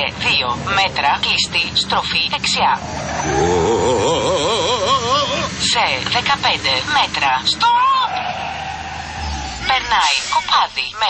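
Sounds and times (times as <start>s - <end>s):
rushing tyre noise: 0.5s - 10.6s
person speaking: 3.2s - 5.8s.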